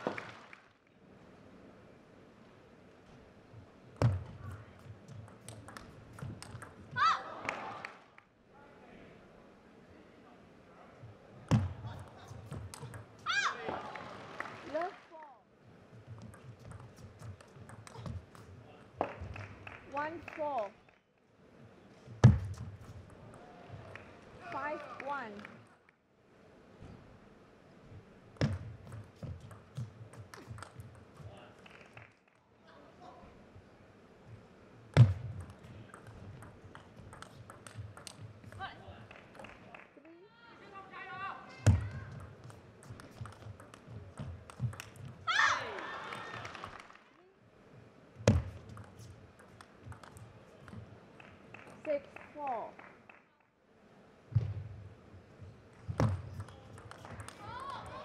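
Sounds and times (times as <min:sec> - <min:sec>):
table tennis ball hits: 0:04.0 - 0:07.6, 0:16.2 - 0:19.4, 0:28.4 - 0:31.3, 0:34.9 - 0:38.6, 0:41.6 - 0:45.2, 0:48.2 - 0:50.8, 0:55.9 - 0:58.0.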